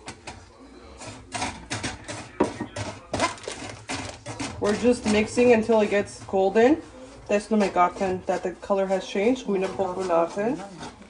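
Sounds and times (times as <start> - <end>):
wooden spoon scraping a pan: 0.0 - 11.0.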